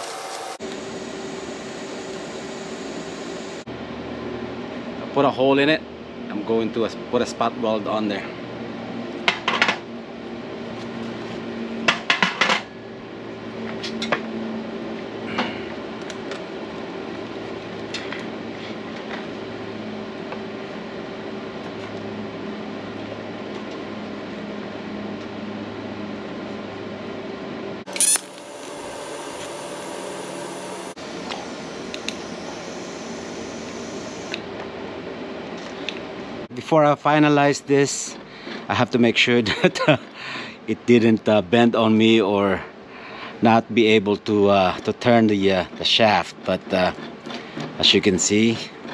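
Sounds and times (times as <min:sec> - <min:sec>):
welding arc hissing: 0:00.0 - 0:03.6, 0:27.9 - 0:34.4
steady electrical hum: 0:27.7 - 0:38.1.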